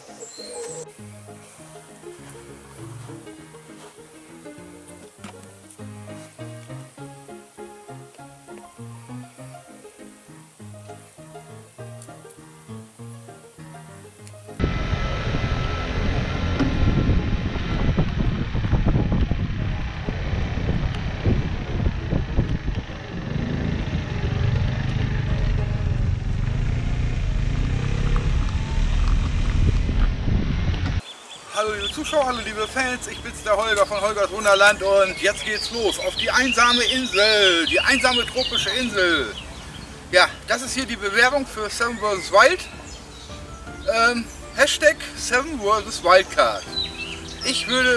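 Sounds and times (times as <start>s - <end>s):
soft background music: 0.0s - 14.6s, 31.9s - 47.9s
vehicle and tyres rumbling: 14.6s - 31.0s
wind buffeting microphone: 14.6s - 31.0s.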